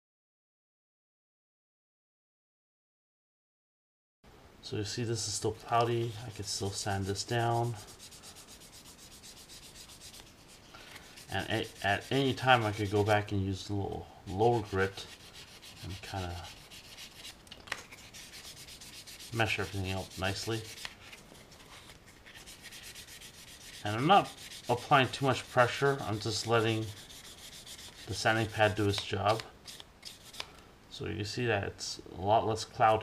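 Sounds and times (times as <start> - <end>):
person speaking: 4.7 - 8.5, 11.2 - 16.8, 19.2 - 20.8, 23.6 - 27.3, 28.0 - 29.6
sanding pad scratching plastic: 5.6 - 13.3, 14.3 - 30.5.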